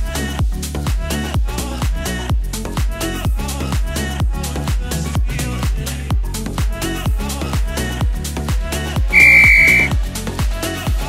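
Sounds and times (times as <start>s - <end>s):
electronic dance music: 9.1s - 9.9s
electronic timer beep: 9.1s - 9.9s.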